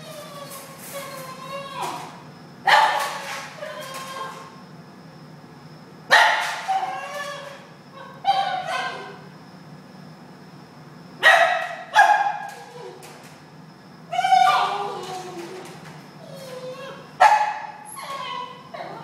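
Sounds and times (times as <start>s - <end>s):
dog yelping: 0.0s - 4.5s, 6.1s - 9.2s, 14.1s - 15.6s, 16.2s - 19.0s.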